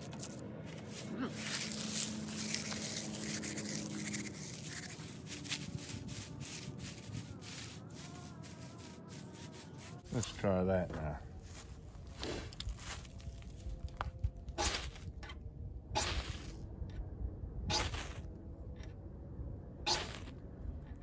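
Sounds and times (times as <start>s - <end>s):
dry leaves crunching: 0.0s - 10.4s, 11.4s - 15.0s.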